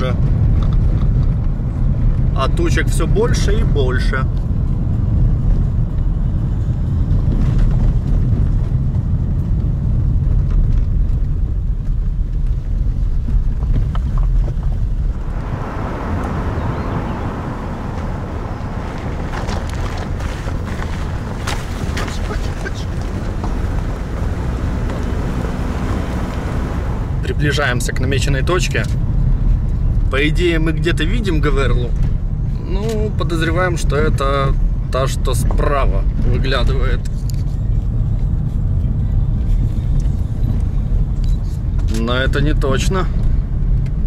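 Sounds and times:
car rumble over gravel road: 0.0 - 44.0
tyre and wind noise: 0.0 - 44.0.

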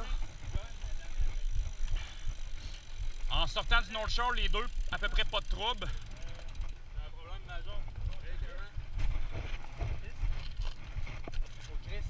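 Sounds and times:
bike tyres rolling on pavement: 0.0 - 12.0.

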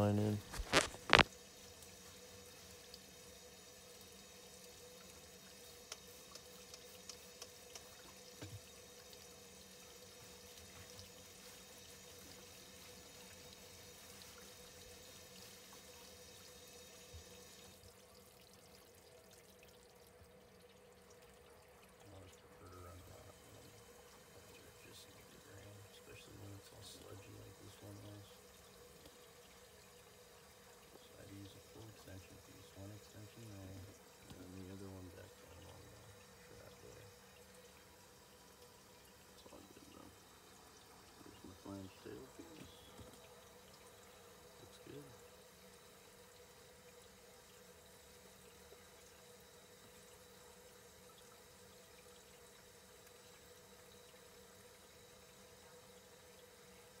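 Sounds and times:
steady low hum: 19.2 - 47.9.

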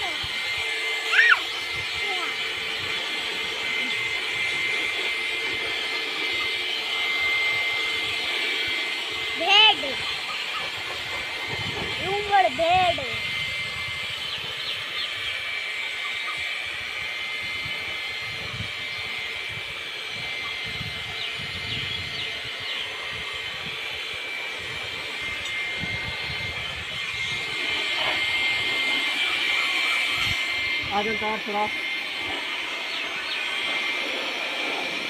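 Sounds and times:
electric air blower running: 0.0 - 35.0.

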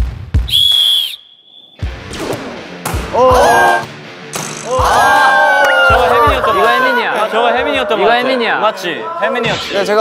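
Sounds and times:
sports whistle blast: 0.5 - 1.9.

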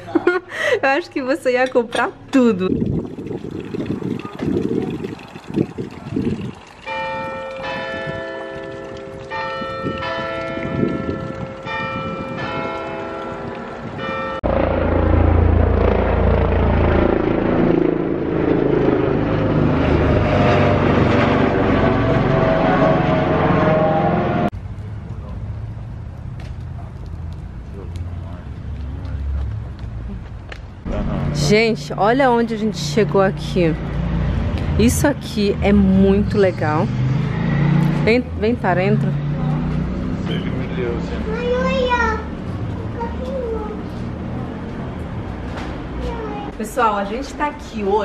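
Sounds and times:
church bells ringing: 6.9 - 15.4.

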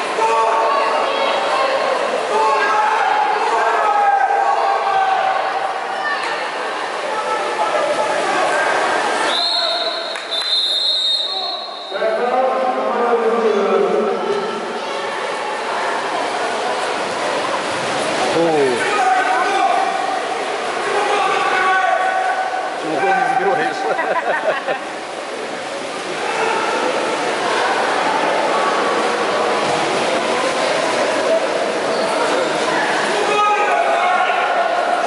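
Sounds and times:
people shouting in echoing hall: 0.0 - 16.2, 18.3 - 24.1, 26.1 - 28.8, 32.7 - 35.0
referee's whistle: 9.3 - 12.0.

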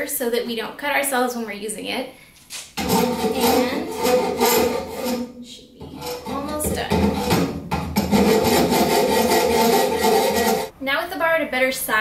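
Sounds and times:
hand file rasping on steel: 2.8 - 10.7.

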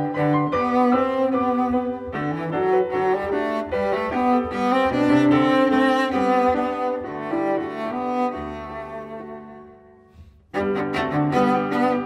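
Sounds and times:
cello bowing held notes: 0.0 - 12.0
piano strokes: 0.0 - 12.0.

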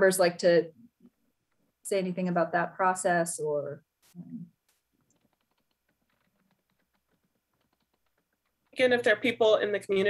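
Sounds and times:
keyboard typing clicks: 5.0 - 8.8.

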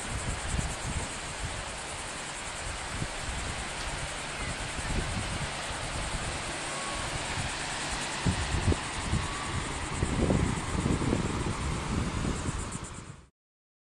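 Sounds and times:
ocean surf hissing: 0.0 - 13.3
wind buffeting microphone: 0.0 - 13.3.

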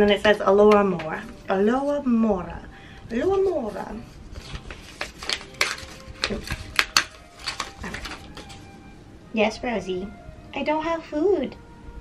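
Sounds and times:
paper envelope crinkling: 3.4 - 8.7.

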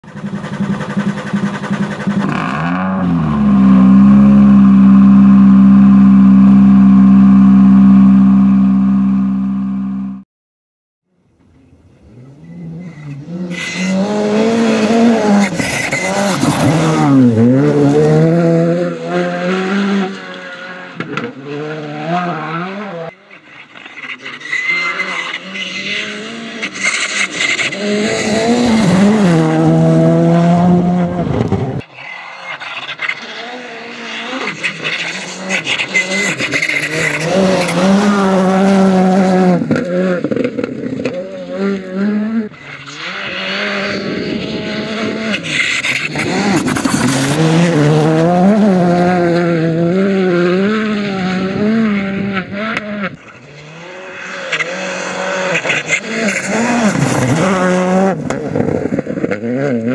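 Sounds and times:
rally car engine revving: 0.0 - 10.2, 11.9 - 59.9.

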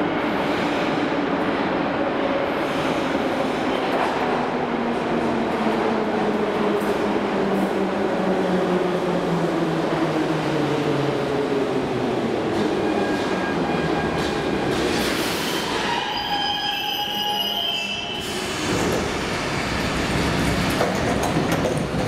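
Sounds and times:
metro train braking: 12.4 - 20.8
train doors opening: 12.6 - 22.0
high squeal of brakes: 14.9 - 18.8.

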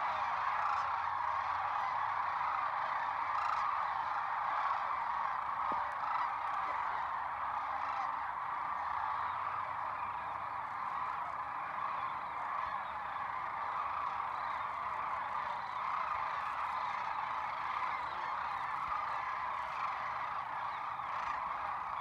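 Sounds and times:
flock of cranes calling: 0.0 - 22.0.

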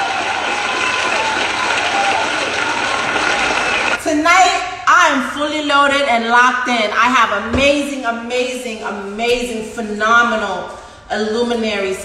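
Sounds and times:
crowd applause and cheering: 0.0 - 4.0.

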